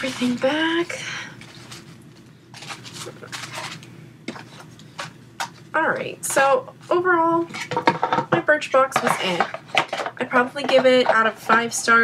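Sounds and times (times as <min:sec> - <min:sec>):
rustling packages in box: 0:00.0 - 0:03.9.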